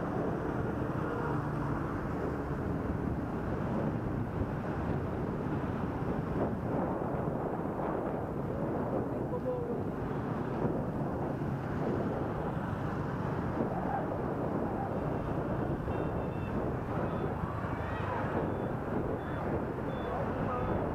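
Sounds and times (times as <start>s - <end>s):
traffic engines: 0.0s - 20.9s
wind and road noise: 0.0s - 20.9s
faint high beeps: 15.8s - 17.6s, 18.4s - 20.9s.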